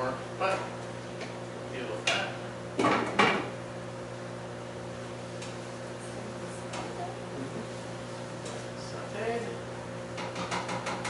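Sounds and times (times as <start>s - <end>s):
steady low hum: 0.0s - 10.4s.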